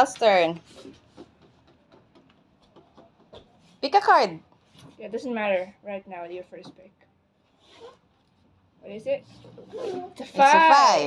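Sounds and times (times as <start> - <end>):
cards ticking and tapping on desk: 0.9 - 3.5.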